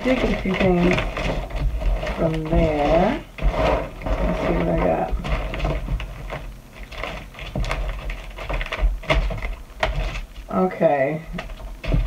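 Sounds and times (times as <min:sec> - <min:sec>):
plastic bags crinkling: 0:00.0 - 0:12.0.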